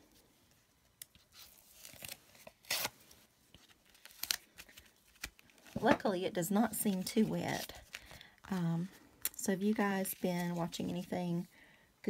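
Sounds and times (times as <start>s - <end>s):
paper rustling and tearing: 1.2s - 5.9s.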